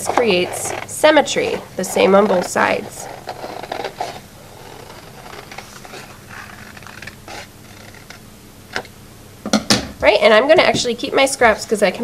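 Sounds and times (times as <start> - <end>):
scissors cutting paper: 0.0 - 8.8.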